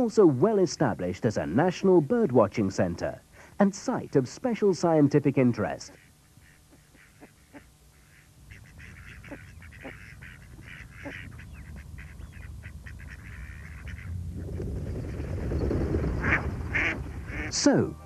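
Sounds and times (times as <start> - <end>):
ducks quacking: 5.7 - 14.2, 16.2 - 17.8.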